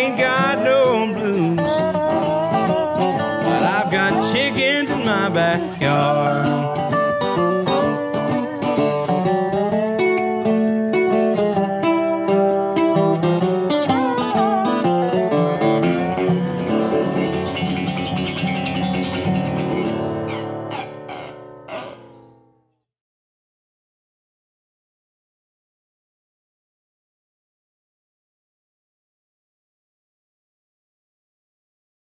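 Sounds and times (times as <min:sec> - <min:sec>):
lap steel resonator guitar gliding: 0:00.0 - 0:22.6
resonator guitar picked: 0:00.0 - 0:22.7.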